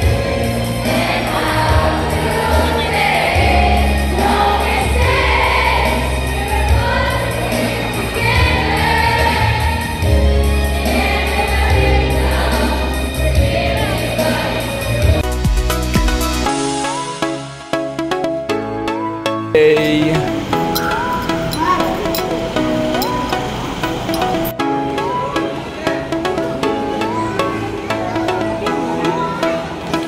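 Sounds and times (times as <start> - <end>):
group of voices singing: 0.0 - 15.2.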